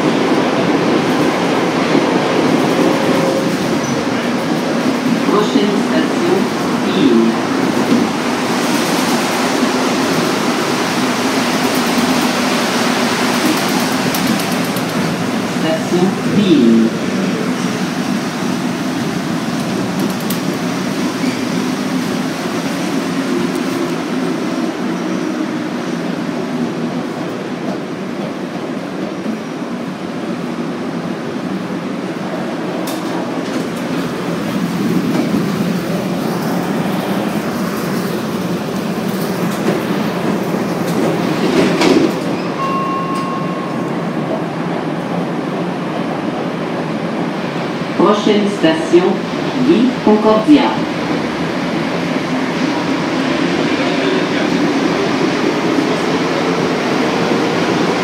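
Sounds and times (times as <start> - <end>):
metro car rumble and hum: 0.0 - 58.0.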